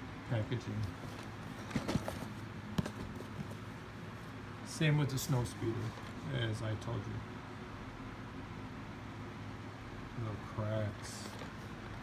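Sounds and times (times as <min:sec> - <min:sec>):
cardboard boxes knocking and tapping: 0:01.6 - 0:03.6.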